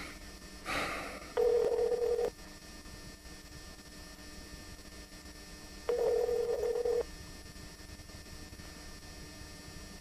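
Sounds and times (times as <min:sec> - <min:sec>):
telephone line tone: 0:01.4 - 0:02.4, 0:05.9 - 0:07.1.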